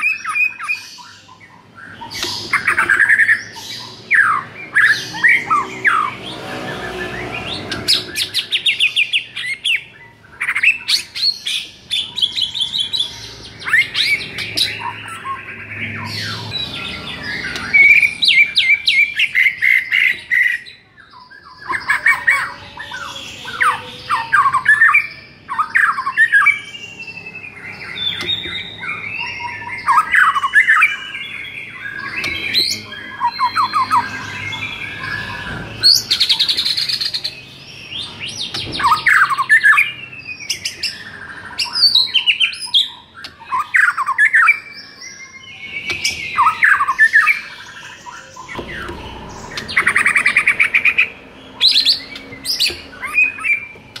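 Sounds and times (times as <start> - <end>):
songbird singing trills and whistles: 0.0 - 54.0.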